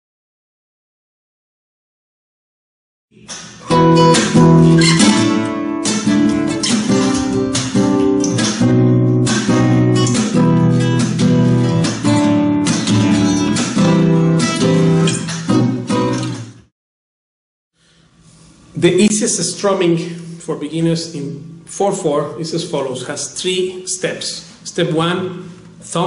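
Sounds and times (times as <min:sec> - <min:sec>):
flamenco guitar strumming: 0:03.2 - 0:16.6.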